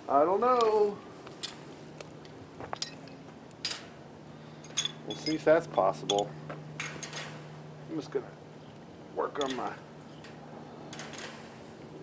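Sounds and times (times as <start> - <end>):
metal wire mesh clinking: 4.6 - 7.5, 9.4 - 11.7.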